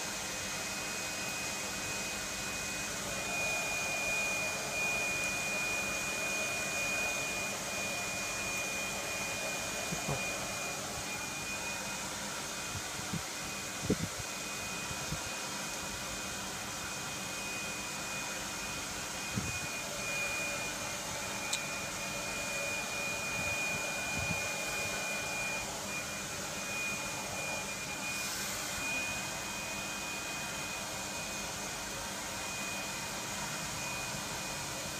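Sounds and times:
thin high whine: 0.7s - 34.9s.

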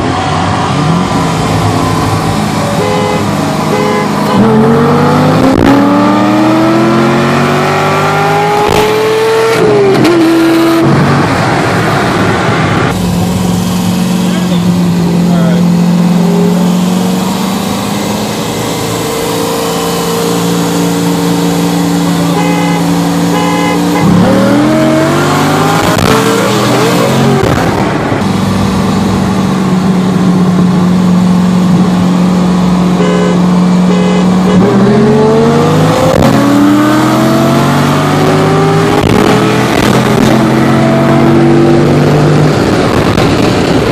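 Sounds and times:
car engine accelerating: 0.0s - 43.9s.

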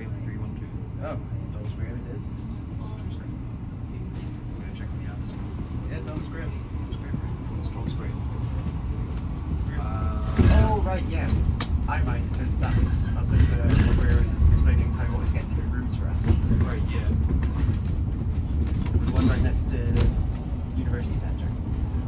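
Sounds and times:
bus road rumble: 0.0s - 22.0s
voices: 9.6s - 17.8s, 19.0s - 21.7s.

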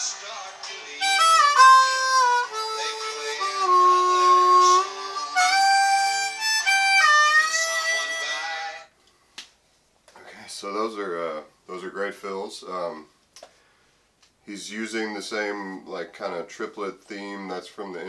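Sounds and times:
harmonica playing: 0.9s - 8.9s
man speaking: 10.2s - 13.1s, 14.5s - 18.0s.

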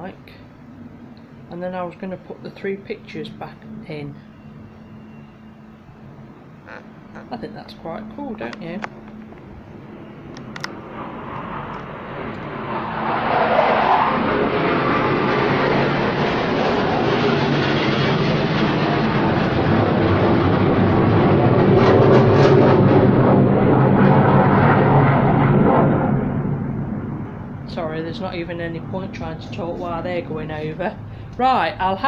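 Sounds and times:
aircraft engine passing overhead: 0.0s - 32.0s.

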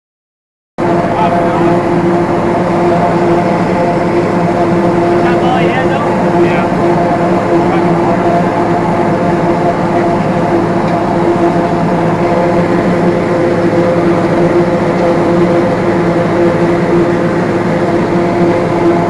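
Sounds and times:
tractor and harvester drone: 0.8s - 19.0s.

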